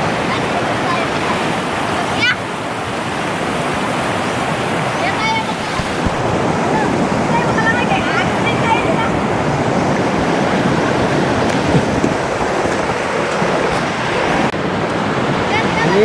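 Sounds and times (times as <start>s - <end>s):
shallow river water rushing: 0.0s - 16.0s
high children's voices: 0.2s - 2.7s, 4.9s - 9.6s, 15.5s - 16.0s.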